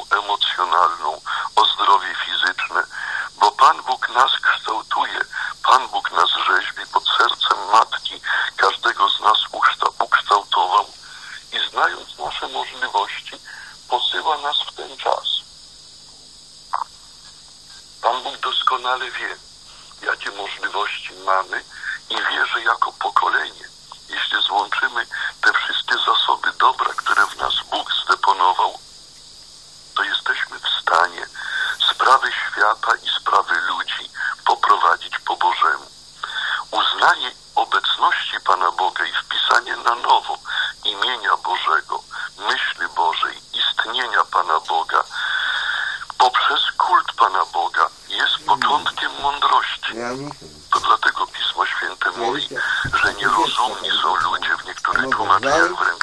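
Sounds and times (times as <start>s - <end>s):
person talking over radio: 18.0s - 28.8s, 30.0s - 56.0s.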